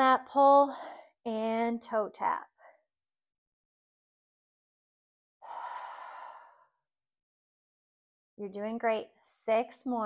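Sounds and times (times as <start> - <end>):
woman exhaling breathily: 5.4 - 6.8.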